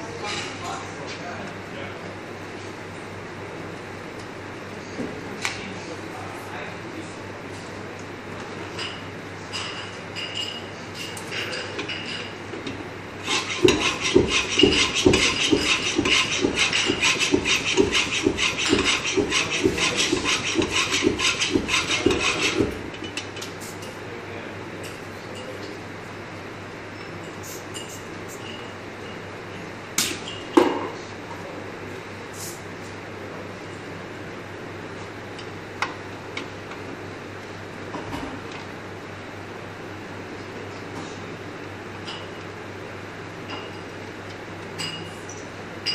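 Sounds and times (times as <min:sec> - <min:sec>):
steady background hum: 0:00.0 - 0:45.9
bicycle pump strokes: 0:13.2 - 0:23.0.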